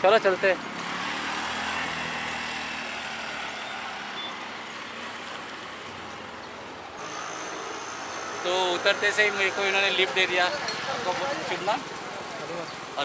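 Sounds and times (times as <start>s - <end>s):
traffic on wet road: 0.0s - 13.0s.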